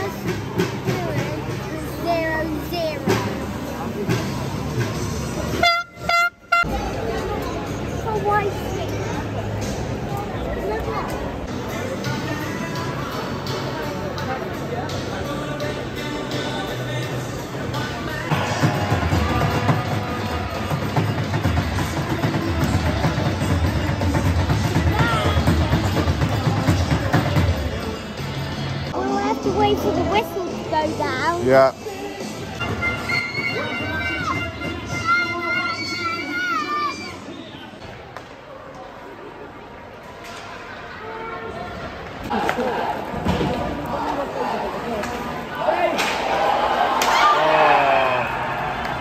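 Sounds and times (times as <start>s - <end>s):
arena crowd noise: 0.0s - 49.0s
horn blasts: 5.5s - 6.7s.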